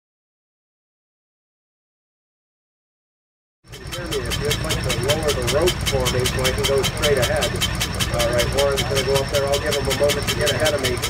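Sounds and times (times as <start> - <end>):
single-cylinder engine running: 3.7 - 11.0.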